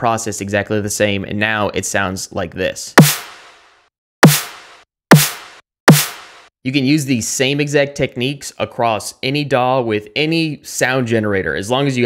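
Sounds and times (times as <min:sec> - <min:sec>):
synthesized snare drum hits: 0:03.0 - 0:03.6, 0:04.2 - 0:06.5.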